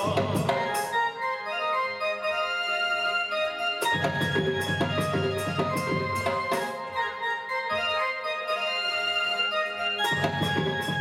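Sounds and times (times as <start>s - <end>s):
percussion: 0.0s - 2.4s, 3.2s - 11.0s
keyboard melody over chords: 0.0s - 11.0s.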